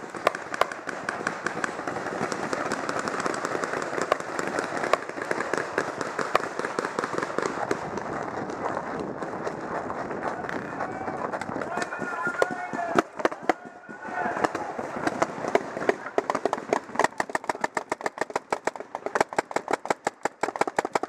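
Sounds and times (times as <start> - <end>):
toy guns popping: 0.0 - 10.6, 14.4 - 21.0
steady background noise: 0.0 - 21.0.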